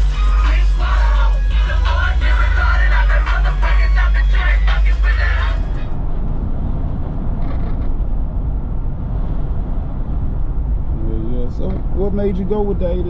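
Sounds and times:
background music: 0:00.0 - 0:05.9
car engine and road noise: 0:00.0 - 0:13.0.

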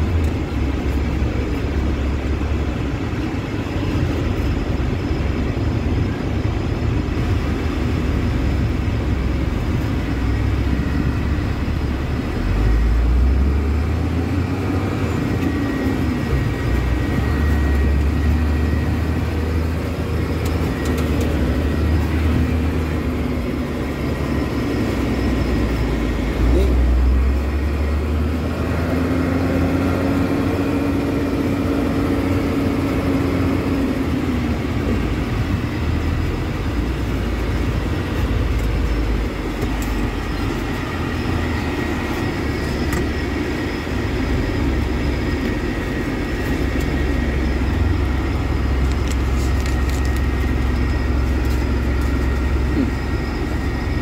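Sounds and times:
road noise: 0:00.0 - 0:54.0
truck engine rumble: 0:00.0 - 0:54.0.

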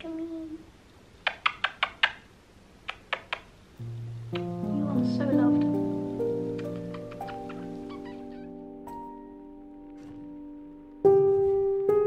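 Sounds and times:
kissing smacks: 0:01.2 - 0:02.3, 0:02.9 - 0:03.5
background music with held notes: 0:03.8 - 0:12.0.

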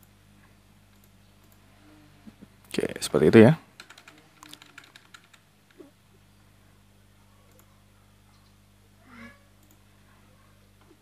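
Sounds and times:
low steady hum: 0:00.0 - 0:11.0
keyboard typing: 0:03.8 - 0:05.8.

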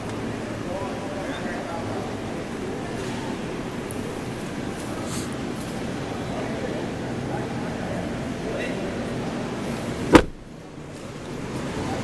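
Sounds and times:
car door shutting: 0:10.0 - 0:10.6.

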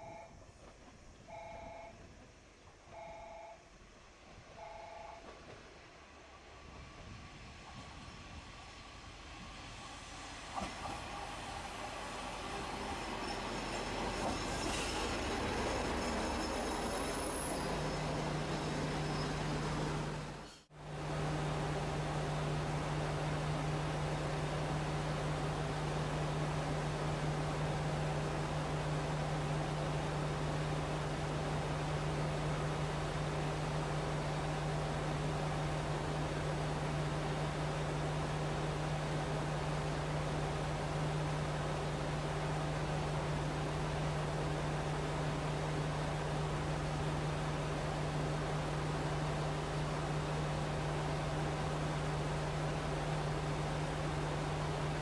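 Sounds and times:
diesel railcar engine: 0:00.0 - 0:55.0.

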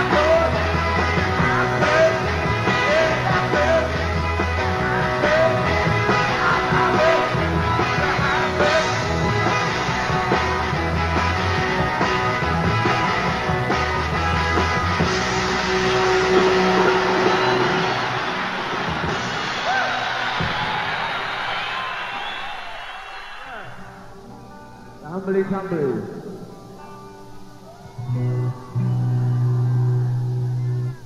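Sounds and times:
live rock band: 0:00.0 - 0:22.8, 0:23.6 - 0:31.0
crowd cheering and whistling: 0:15.1 - 0:24.2.

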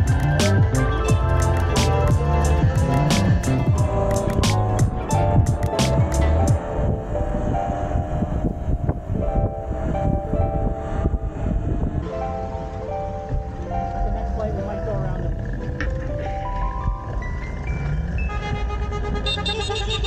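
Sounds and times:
background music with steady beat: 0:00.0 - 0:14.9.

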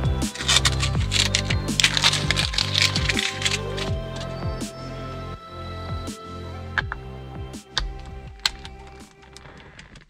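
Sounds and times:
background music with bass glides: 0:00.0 - 0:10.0
sharp clicks and rattles: 0:00.1 - 0:04.5, 0:07.8 - 0:10.0.

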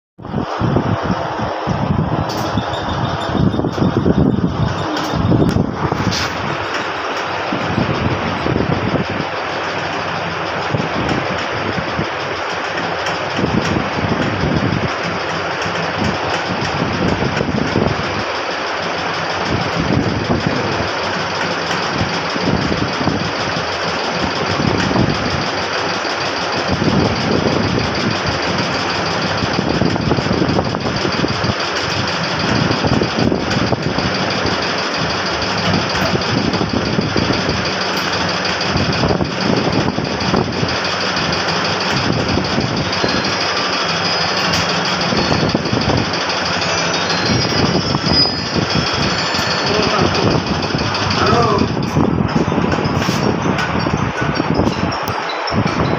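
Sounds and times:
hydraulic motor and pump running: 0:00.2 - 0:55.9.

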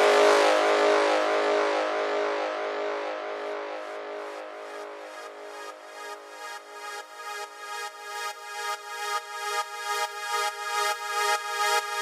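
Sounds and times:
held synth chord: 0:00.0 - 0:07.1.

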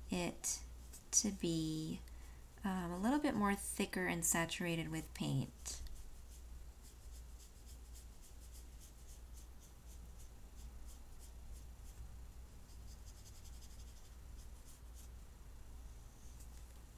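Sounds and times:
low steady hum: 0:00.0 - 0:16.9
paintbrush strokes on paper: 0:00.3 - 0:16.9.

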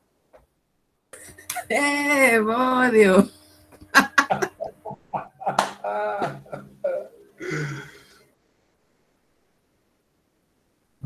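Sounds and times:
laughter over video call: 0:03.9 - 0:07.2.

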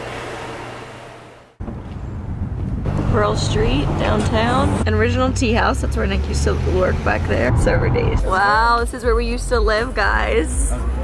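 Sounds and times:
low outdoor rumble: 0:01.6 - 0:11.0.

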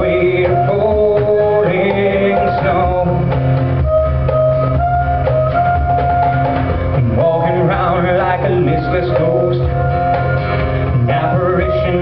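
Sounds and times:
drum kit: 0:00.0 - 0:12.0
harmonica long bending notes: 0:00.0 - 0:12.0
strummed acoustic guitar: 0:00.0 - 0:12.0.

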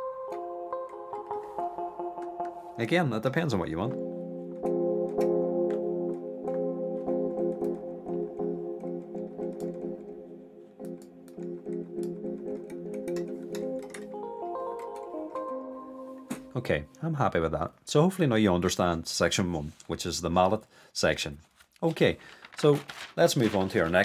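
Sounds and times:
electric piano chord: 0:00.0 - 0:17.0.

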